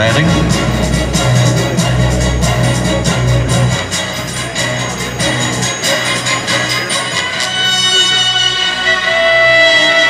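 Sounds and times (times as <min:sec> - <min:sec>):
strong low note: 0:00.0 - 0:05.0
music with regular beat: 0:00.0 - 0:10.0.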